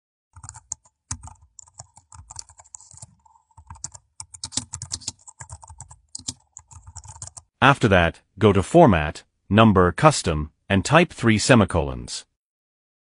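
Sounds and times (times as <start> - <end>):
computer keyboard typing: 0.3 - 7.5.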